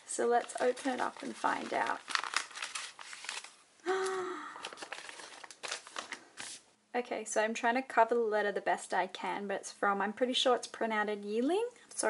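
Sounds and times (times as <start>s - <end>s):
paper envelope tearing: 0.4s - 3.6s, 4.6s - 6.6s
person humming: 3.8s - 4.6s.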